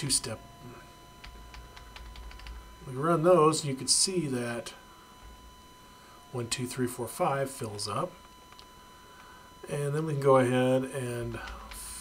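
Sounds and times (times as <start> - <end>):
faint low hum: 0.0 - 12.0
keyboard keys tapping: 1.2 - 2.6.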